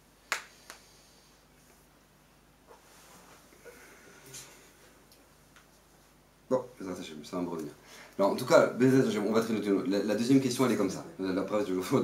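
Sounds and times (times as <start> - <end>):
finger snaps: 0.3 - 0.9.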